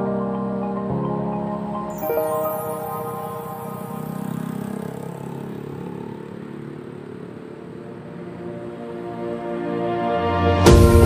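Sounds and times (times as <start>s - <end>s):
motorcycle engine passing: 2.6s - 8.3s
road traffic noise: 2.6s - 9.4s.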